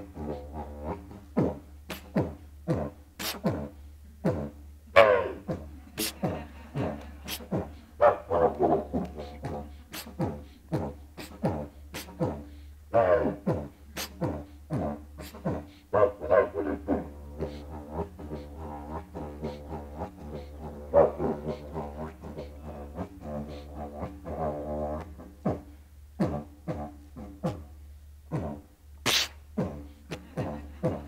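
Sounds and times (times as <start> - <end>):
didgeridoo drone: 0.0 - 27.7
beatbox-like accents: 0.0 - 31.0.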